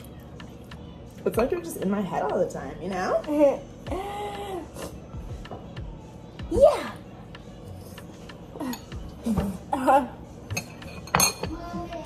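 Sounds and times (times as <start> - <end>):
fork clinking against ceramic bowl: 10.5 - 11.5.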